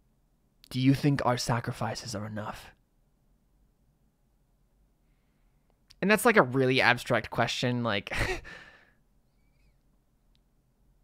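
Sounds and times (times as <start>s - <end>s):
breathy sigh: 8.4s - 9.8s.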